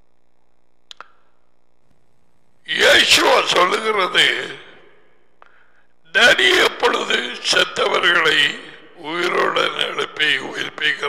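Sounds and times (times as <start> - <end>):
man talking: 2.6 - 4.9, 6.1 - 11.0.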